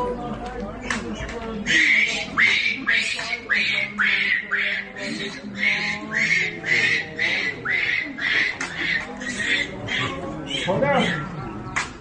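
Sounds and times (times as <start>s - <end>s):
infant monkey calling: 1.6s - 11.8s.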